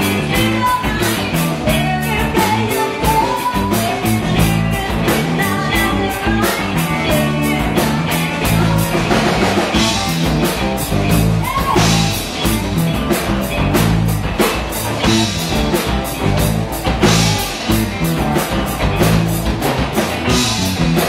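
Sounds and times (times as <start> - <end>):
drum kit beat: 0.0 - 21.0
electric guitars: 0.0 - 21.0.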